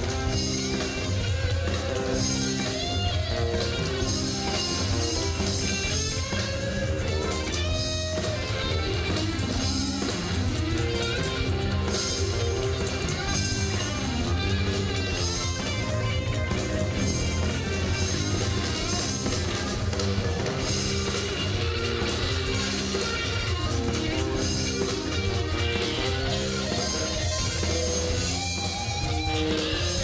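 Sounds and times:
live blues band playing: 0.0s - 30.0s.

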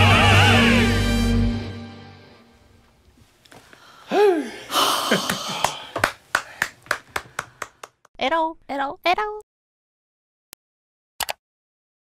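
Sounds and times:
person whooping: 4.1s - 5.8s
hands clapping: 5.2s - 8.1s.

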